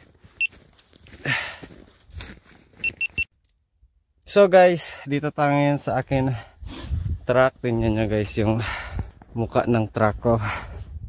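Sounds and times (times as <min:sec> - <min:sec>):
short high electronic beeps: 0:02.8 - 0:03.3.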